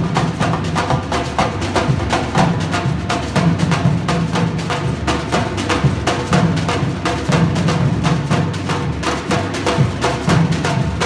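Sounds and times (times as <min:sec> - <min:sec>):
drum ensemble groove: 0:00.0 - 0:11.0.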